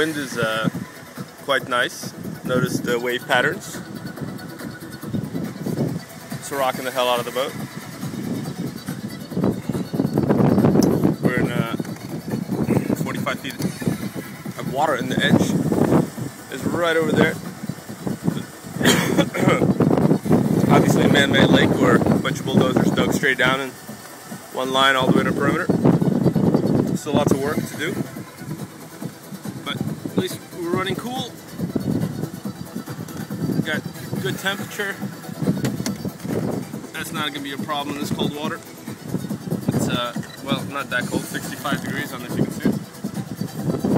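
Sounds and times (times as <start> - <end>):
boat engine idling: 0.0 - 43.9
wind buffeting microphone: 0.0 - 43.9.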